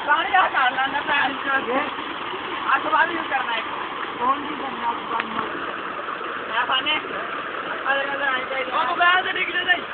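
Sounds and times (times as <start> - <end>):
water gushing into a tank: 0.0 - 9.9.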